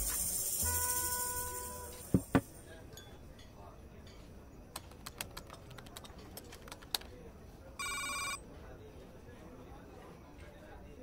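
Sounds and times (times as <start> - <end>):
laptop keyboard typing: 4.8 - 7.1.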